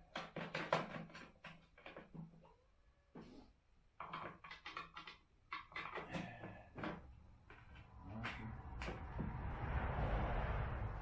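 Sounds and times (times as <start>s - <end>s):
broad rushing noise: 8.5s - 11.0s.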